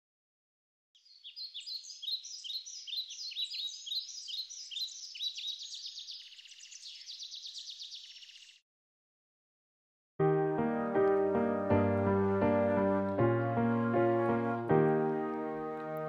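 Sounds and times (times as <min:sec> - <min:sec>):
birds chirping: 0:01.0 - 0:08.6.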